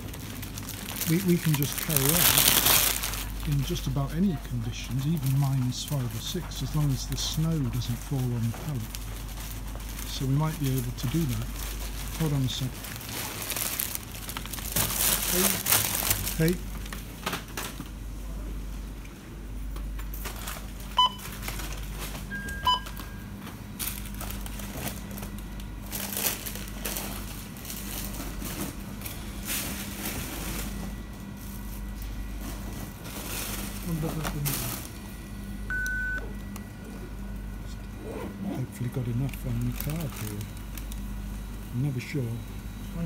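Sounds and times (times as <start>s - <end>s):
steady hum: 0.0s - 43.0s
checkout scanner bleeps: 21.0s - 21.3s, 22.3s - 23.5s, 35.7s - 36.3s
payment terminal long beep: 21.0s - 21.4s, 22.3s - 23.6s, 35.6s - 36.4s.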